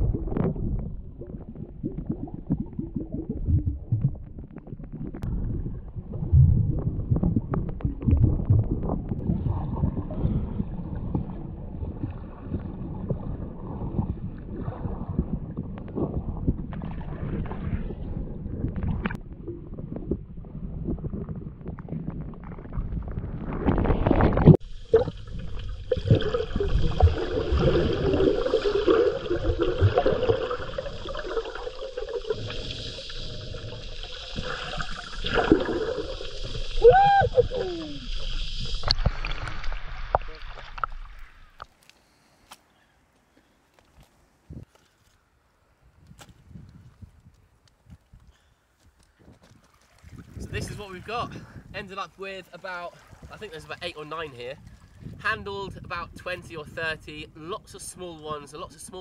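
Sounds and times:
underwater churning rumble: 0.0s - 41.6s
underwater knocks: 3.4s - 9.6s
hissy underwater sound: 24.0s - 42.3s.

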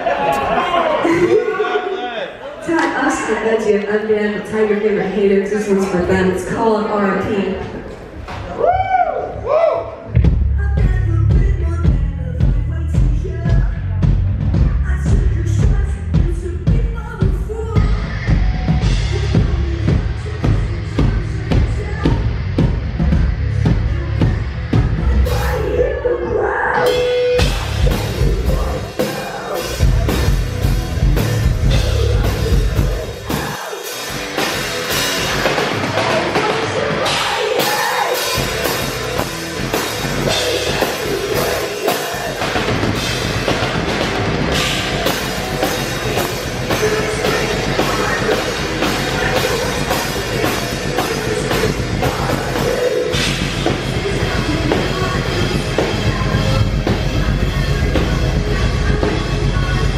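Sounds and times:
hard rock band playing: 10.0s - 59.9s
drum kit beat: 10.1s - 26.0s, 26.8s - 59.9s.

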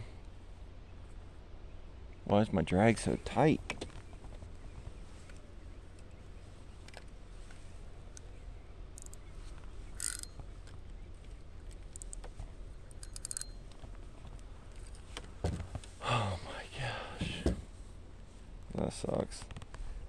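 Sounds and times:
low steady rumble: 0.0s - 20.0s
fishing reel clicking: 9.0s - 9.2s, 10.0s - 10.3s, 12.9s - 13.6s.

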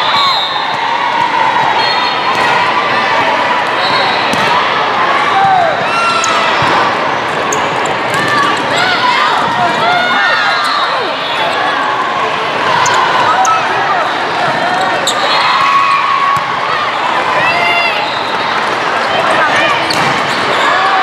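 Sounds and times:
babble of voices echoing: 1.5s - 21.0s
sneakers squeaking on court: 14.5s - 15.4s.

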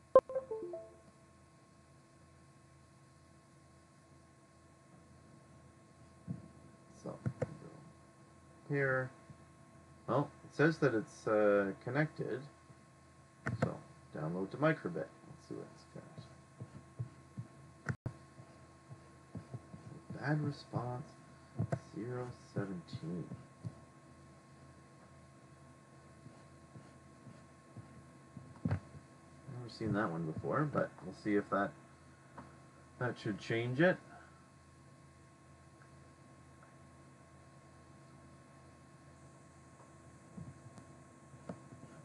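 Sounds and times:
faint steady hum: 0.0s - 42.0s
electronic device chime: 0.2s - 0.9s
soft low thumps: 16.2s - 20.4s, 21.6s - 21.9s.

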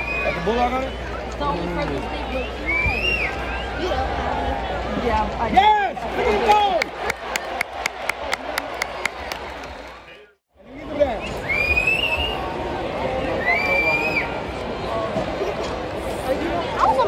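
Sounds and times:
stadium crowd cheering: 0.0s - 16.0s
crowd chatter: 0.0s - 17.0s.

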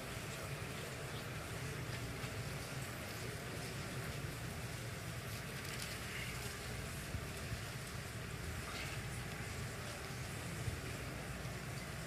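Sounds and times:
low hall hum: 0.0s - 12.0s.

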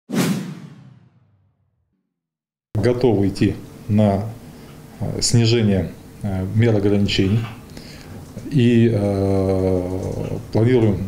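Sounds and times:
whoosh sound effect: 0.1s - 1.5s
low hit: 0.3s - 1.5s.

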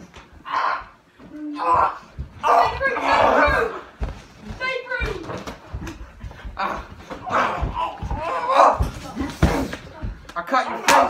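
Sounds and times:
bodies and feet thudding on floor: 0.0s - 11.0s
voices shouting: 1.6s - 4.0s, 6.6s - 9.2s.

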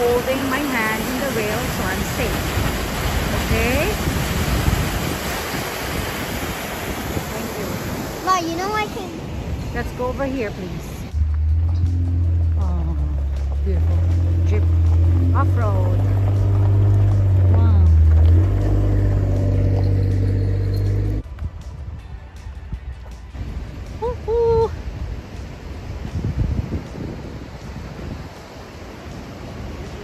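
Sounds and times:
car engine driving on gravel: 11.1s - 21.2s
rising and falling call: 11.1s - 21.2s.

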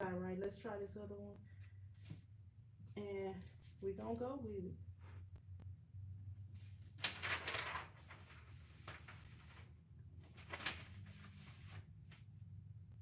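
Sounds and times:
low steady hum: 0.0s - 13.0s
paper rustling: 6.6s - 12.3s.

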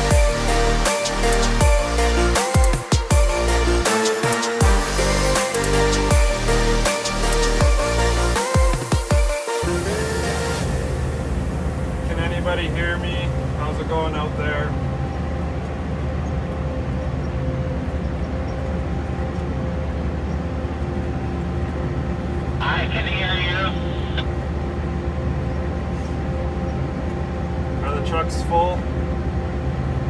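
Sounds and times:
engine droning: 0.0s - 30.0s
person speaking: 22.6s - 24.3s.

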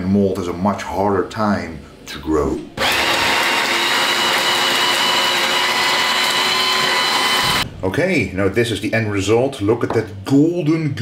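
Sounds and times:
hand blender grinding: 2.8s - 7.6s.

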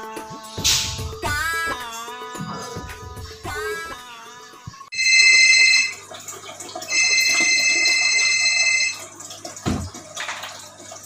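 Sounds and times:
mobile phone ringing: 4.9s - 6.1s, 6.9s - 9.1s.

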